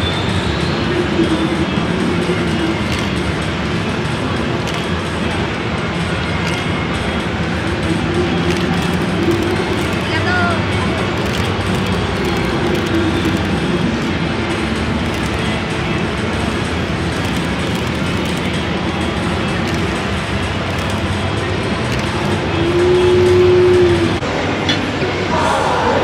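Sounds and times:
background music: 0.0s - 26.0s
din of busy exhibition hall: 0.0s - 26.0s.

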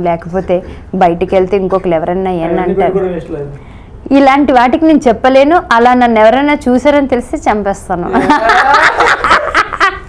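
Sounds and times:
woman laughing: 8.1s - 10.0s.

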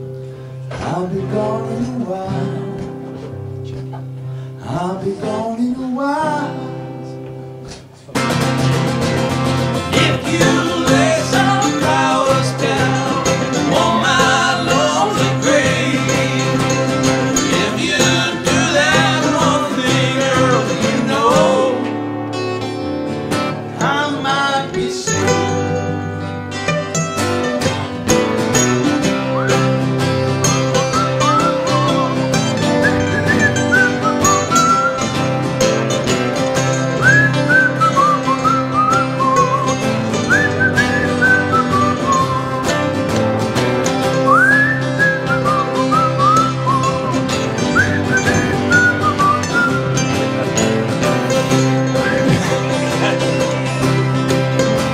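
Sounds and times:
acoustic country band playing: 0.0s - 54.9s
whistled melody: 28.6s - 29.8s, 30.4s - 35.4s, 36.7s - 43.1s, 44.0s - 50.2s, 51.8s - 52.7s.

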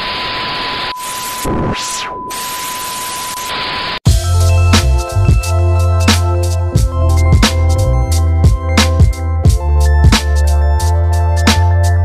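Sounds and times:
tv static hiss: 0.0s - 4.0s
high test-tone beep: 0.9s - 8.0s.

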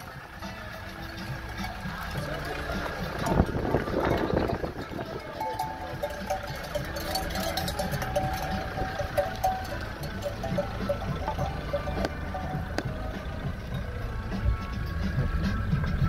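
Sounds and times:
goat bells clanking: 0.0s - 15.3s.

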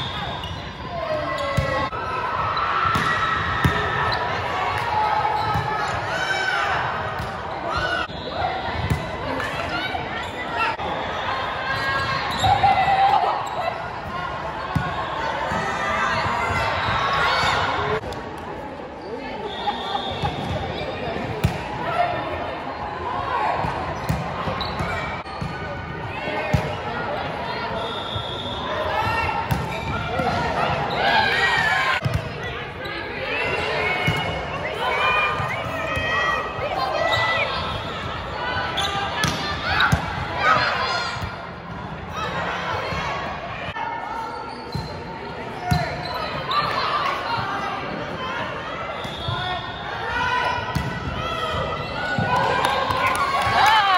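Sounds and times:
sneaker squeaks: 0.0s - 1.9s, 5.3s - 5.7s, 11.7s - 13.8s, 24.0s - 25.7s, 27.7s - 31.4s, 44.2s - 46.9s, 48.9s - 49.8s
voices of players and spectators: 0.0s - 53.9s
volleyball slaps: 2.8s - 3.9s, 39.2s - 40.2s.

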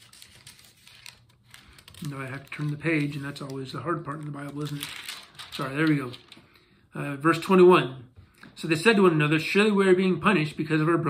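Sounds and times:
page turning: 0.0s - 6.6s
rustling book pages: 0.0s - 6.6s.

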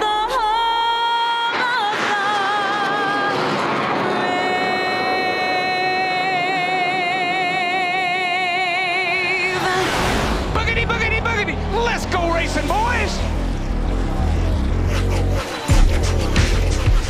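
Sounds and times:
jet fighter flyover rushing: 1.0s - 16.4s
person singing long note with vibrato: 4.0s - 9.8s.

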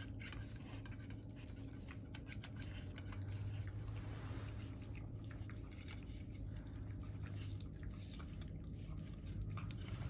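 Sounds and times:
puppies eating from metal bowl: 0.0s - 10.0s
steady low hum: 0.0s - 10.0s.

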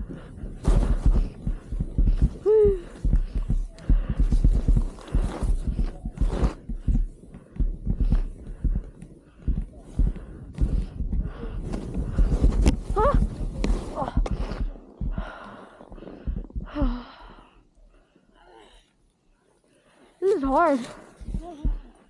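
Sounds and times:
movement through powder snow: 4.3s - 6.7s, 11.6s - 14.6s.

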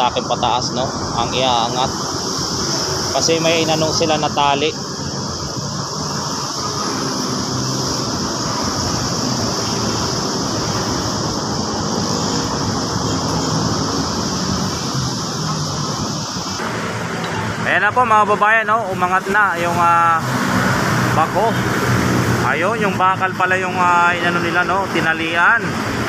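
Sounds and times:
high steady hiss: 0.0s - 20.4s
water noise: 0.0s - 26.0s
wind: 0.0s - 26.0s.

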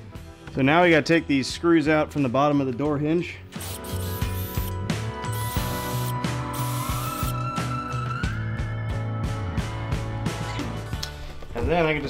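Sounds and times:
background music: 0.0s - 12.0s
cordless drill motor running: 3.6s - 7.4s.

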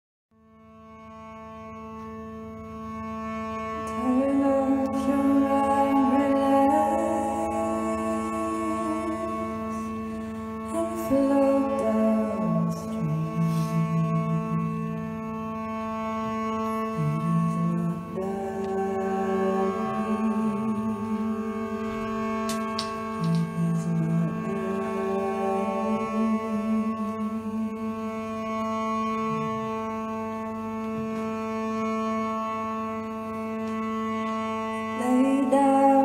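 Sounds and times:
bowed cello notes: 0.4s - 36.0s
steady drone: 1.0s - 36.0s.

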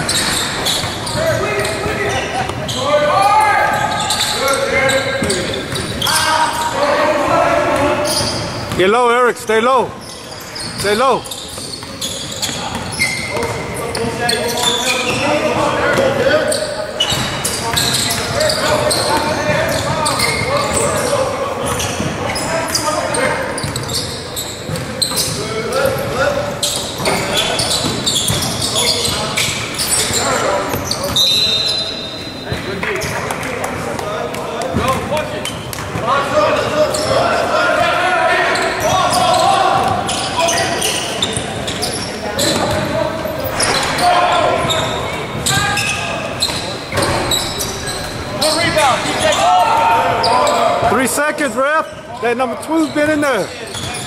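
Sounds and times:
players shouting: 0.0s - 9.9s, 36.0s - 54.0s
sneakers squeaking on floor: 0.0s - 54.0s
high whistle: 31.2s - 32.4s.

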